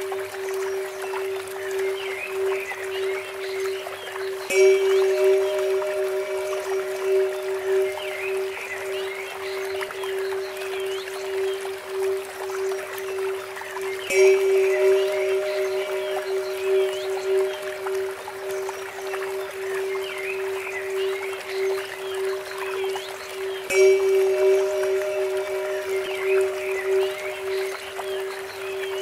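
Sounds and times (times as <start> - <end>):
bird-like chirps: 0.0 - 29.0
steady held tone: 0.0 - 29.0
trickling water: 0.0 - 29.0
bell struck and ringing: 4.5 - 8.7.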